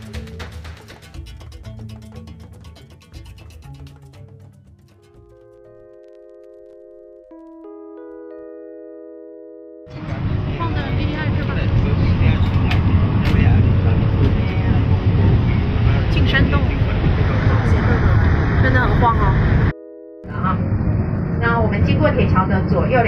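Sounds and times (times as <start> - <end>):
mallet keyboard music: 0.0 - 10.2
train rumbling inside carriage: 10.0 - 19.7.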